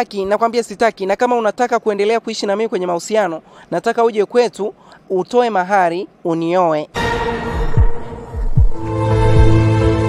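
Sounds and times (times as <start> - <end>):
dramatic held music chord: 7.0 - 10.0
heartbeat low thumps: 7.1 - 9.8.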